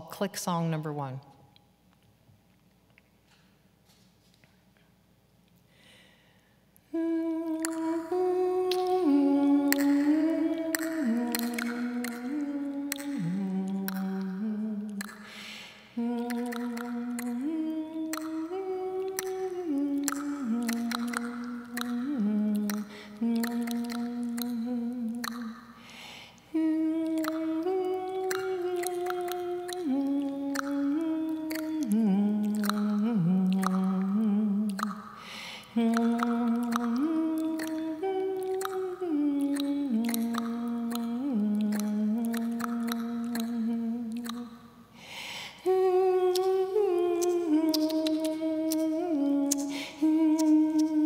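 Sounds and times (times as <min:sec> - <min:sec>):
quick breath in: 0:05.7 - 0:06.6, 0:15.2 - 0:15.9, 0:25.8 - 0:26.4, 0:35.2 - 0:35.7, 0:45.0 - 0:45.6, 0:49.7 - 0:50.0
tongue clicks: 0:06.4 - 0:51.0
woman humming a melody: 0:06.9 - 0:15.2, 0:15.9 - 0:25.5, 0:26.5 - 0:35.0, 0:35.7 - 0:44.6, 0:45.6 - 0:51.0.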